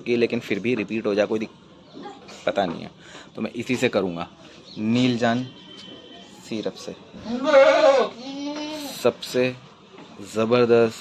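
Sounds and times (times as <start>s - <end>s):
goat bleating: 7.2s - 9.0s.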